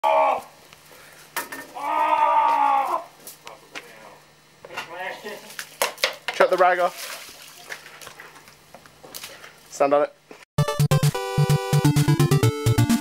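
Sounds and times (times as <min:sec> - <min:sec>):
person yelling: 0:00.0 - 0:00.6, 0:01.7 - 0:03.2.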